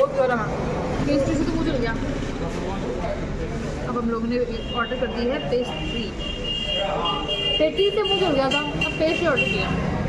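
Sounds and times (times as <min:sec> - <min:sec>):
woman talking: 0:00.0 - 0:02.2, 0:07.6 - 0:09.8
street traffic hum: 0:00.0 - 0:10.0.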